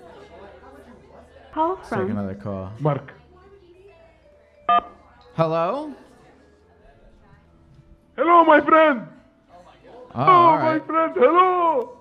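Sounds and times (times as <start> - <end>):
two-tone telephone beep: 4.6 - 5.0.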